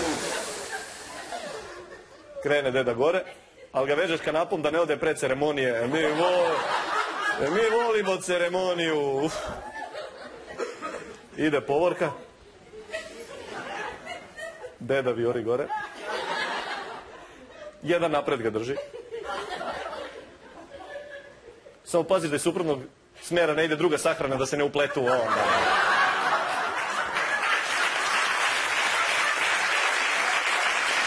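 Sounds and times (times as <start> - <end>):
man hissing into microphone: 0.0 - 1.4
audience murmuring and chuckling: 0.0 - 2.5.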